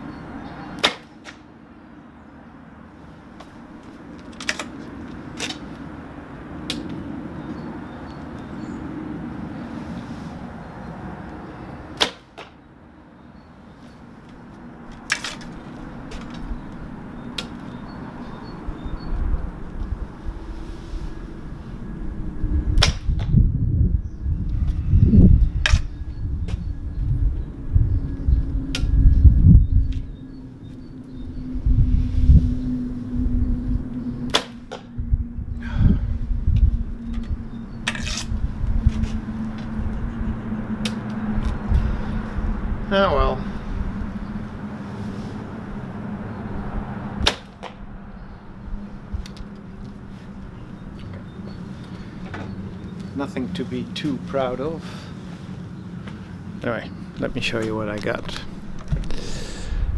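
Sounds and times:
bow handling clicks and knocks: 4.2 - 5.6
steady low drone: 13.7 - 59.9
loud low rumbling: 15.9 - 54.8.

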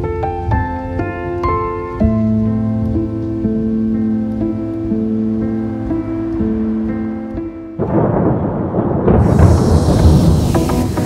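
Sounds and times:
rushing hiss like heavy rain: 0.0 - 11.0
deep thunder rumble: 7.8 - 11.0.

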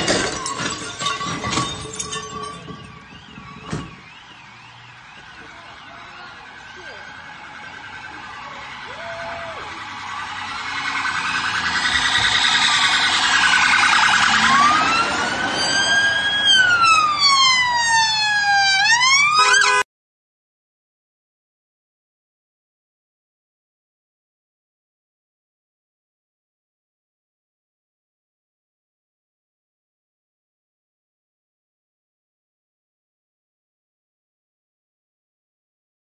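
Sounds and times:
emergency vehicle siren: 0.0 - 19.9.

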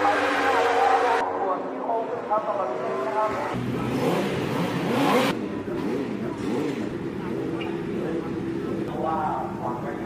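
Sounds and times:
voices: 0.0 - 4.7.

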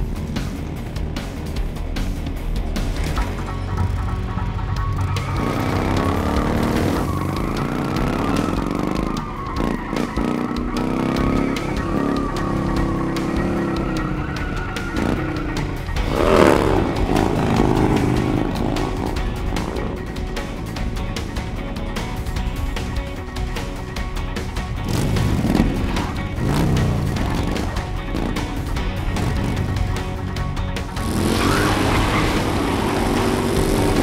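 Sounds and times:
background music: 0.0 - 34.0
motorcycle engines revving: 0.0 - 34.0.

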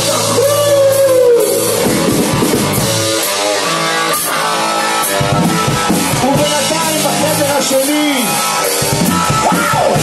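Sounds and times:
live rock band playing: 0.0 - 10.0
drum hits: 1.8 - 3.4.

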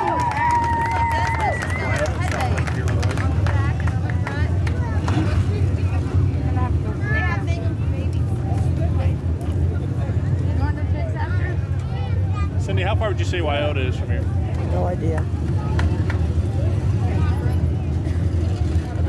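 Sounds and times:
people talking indistinctly: 1.6 - 19.0.

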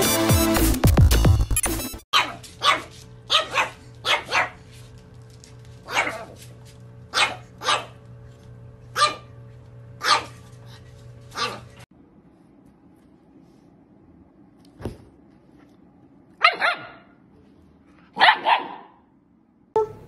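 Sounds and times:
puppy barking: 2.1 - 4.6, 5.8 - 6.4, 7.1 - 8.0, 9.0 - 9.3, 10.0 - 10.4, 11.3 - 11.8, 16.4 - 17.2, 18.1 - 19.1, 19.8 - 20.0.

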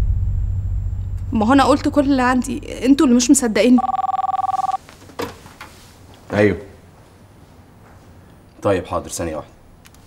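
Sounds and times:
mobile phone ringing: 3.7 - 4.8.

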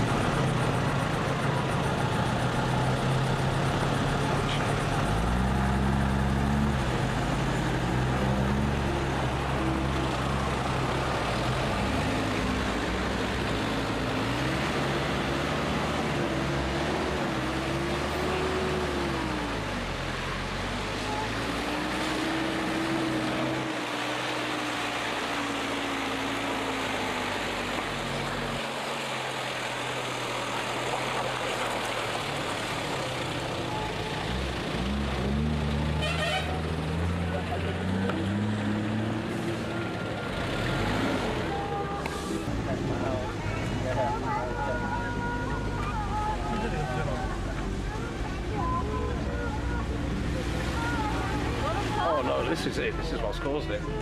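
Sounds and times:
vehicle engine revving: 0.0 - 52.6
road noise on gravel: 0.0 - 54.0.

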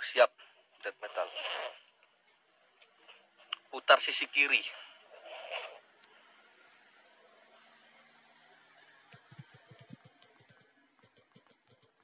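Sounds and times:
faint background hiss: 0.0 - 12.0
fingers tapping on touchscreen: 9.1 - 12.0.

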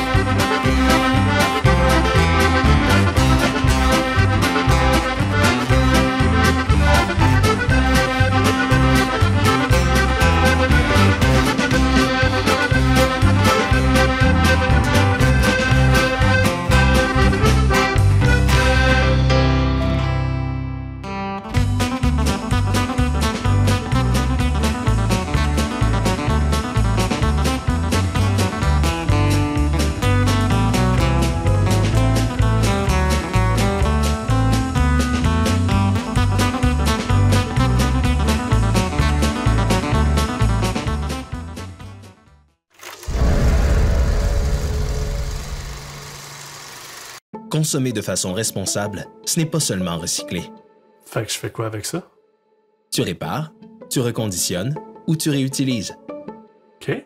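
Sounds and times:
band playing steady beat: 0.0 - 19.0
button accordion: 0.0 - 19.4
end-credit music: 0.0 - 41.2, 42.8 - 47.8
whooshing swell with low rumble: 43.0 - 46.3
steady low hum: 43.1 - 46.8.

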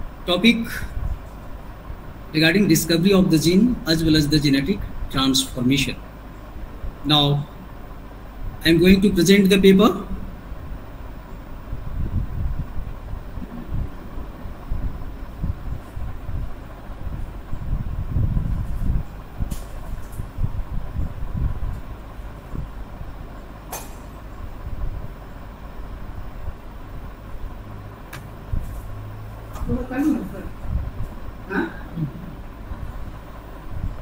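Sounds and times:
low background rumble: 0.0 - 34.0.

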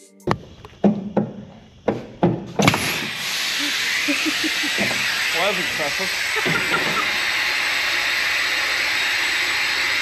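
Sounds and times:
sharp knocks and clanks: 0.3 - 3.2
compressed air hissing: 2.6 - 10.0.

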